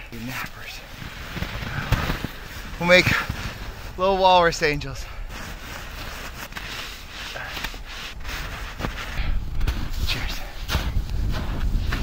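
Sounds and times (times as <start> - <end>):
snow crunching and swishing: 0.0 - 12.0
wind rumbling on microphone: 0.0 - 12.0.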